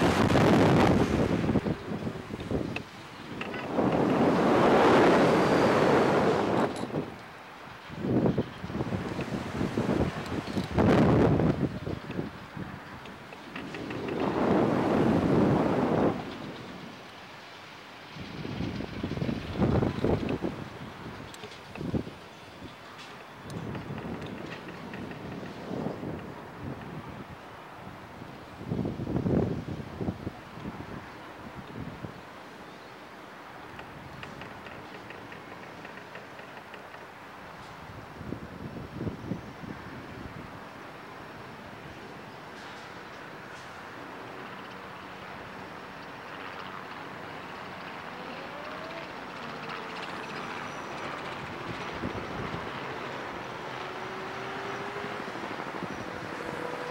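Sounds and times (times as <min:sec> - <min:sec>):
wind buffeting microphone: 0:00.0 - 0:17.3, 0:18.0 - 0:32.4, 0:33.4 - 0:56.9.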